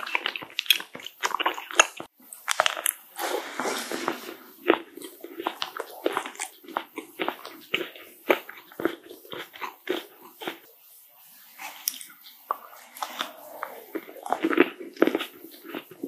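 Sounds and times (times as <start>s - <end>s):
crunchy bite: 0.0s - 10.6s
wet crackling chewing: 0.0s - 16.0s.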